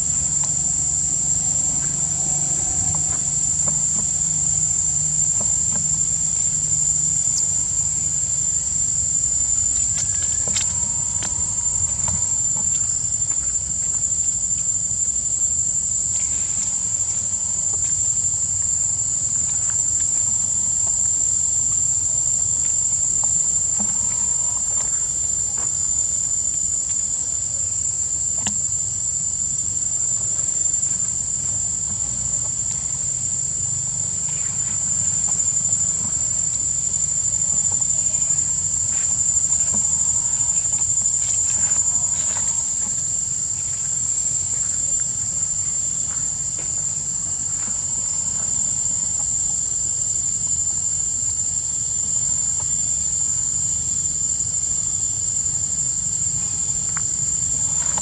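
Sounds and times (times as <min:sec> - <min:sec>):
high-pitched insect drone: 0:00.0 - 0:58.0.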